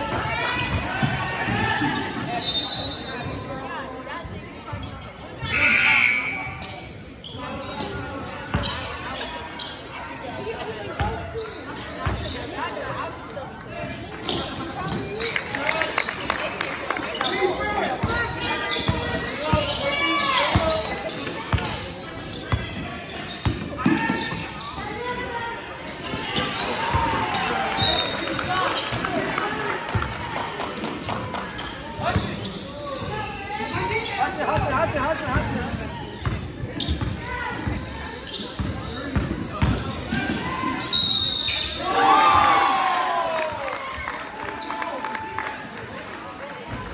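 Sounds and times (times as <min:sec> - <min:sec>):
voices echoing in gym: 0:00.0 - 0:46.9.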